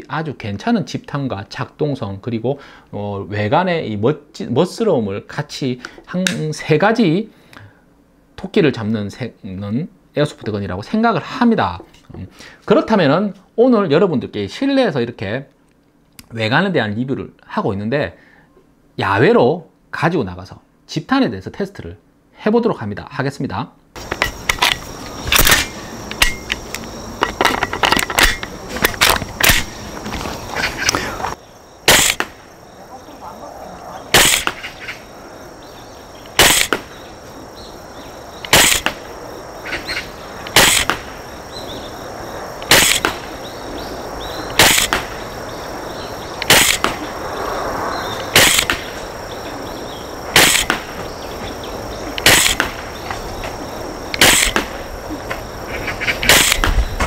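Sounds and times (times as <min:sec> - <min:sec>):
airsoft rifle shots: 0:28.0 - 0:29.8, 0:31.8 - 0:32.4, 0:34.1 - 0:35.0, 0:36.3 - 0:37.0, 0:38.4 - 0:39.1, 0:40.4 - 0:41.2, 0:42.6 - 0:43.4, 0:44.5 - 0:45.3, 0:46.4 - 0:47.1, 0:48.2 - 0:49.0, 0:50.3 - 0:51.1, 0:52.2 - 0:53.0, 0:54.2 - 0:54.8, 0:56.2 - 0:56.8
rifle clicks: 0:48.4 - 0:48.9.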